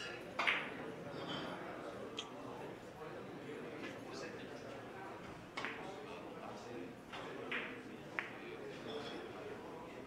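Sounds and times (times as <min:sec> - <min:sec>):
murmur of voices: 0:00.0 - 0:10.0.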